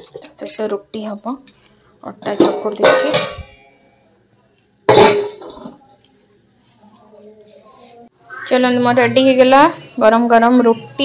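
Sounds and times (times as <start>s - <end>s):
steel plate clanking on utensils: 2.2s - 3.6s, 4.9s - 5.8s.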